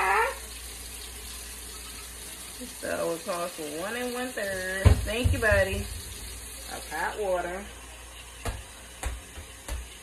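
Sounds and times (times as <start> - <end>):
kitchenware knocks: 4.8 - 6.2.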